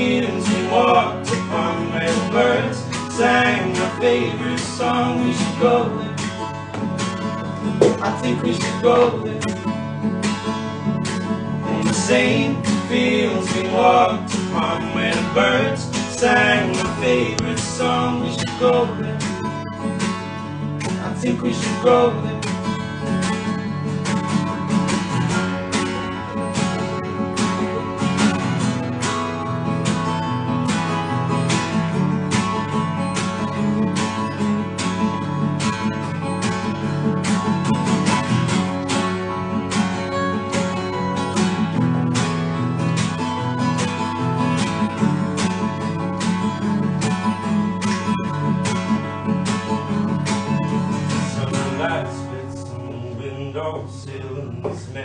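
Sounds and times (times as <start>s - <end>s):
acoustic guitars strumming: 0.0s - 55.0s.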